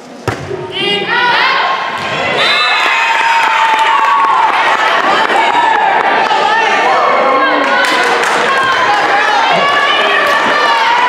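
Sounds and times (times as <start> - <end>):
crowd cheering: 1.1 - 11.0.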